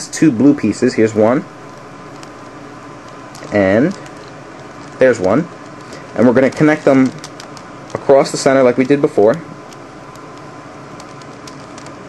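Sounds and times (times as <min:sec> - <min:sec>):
steady hiss: 0:00.0 - 0:12.0
puzzle cube layers clicking: 0:03.0 - 0:12.0.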